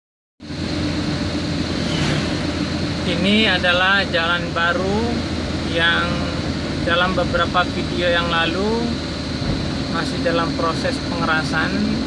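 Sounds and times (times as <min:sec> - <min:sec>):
vehicle engine and road noise: 0:00.4 - 0:12.0.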